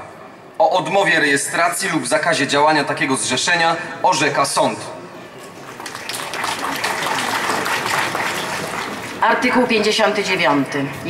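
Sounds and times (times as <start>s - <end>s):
crowd applauding: 5.5s - 9.3s.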